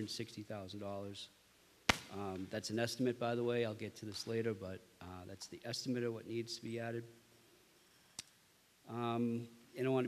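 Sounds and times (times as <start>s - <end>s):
man speaking into a microphone: 0.0s - 1.4s, 2.0s - 7.2s, 8.9s - 10.0s.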